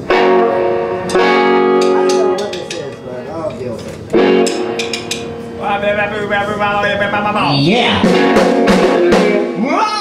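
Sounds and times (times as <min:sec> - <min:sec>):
electric guitar chords ringing: 0:00.0 - 0:10.0.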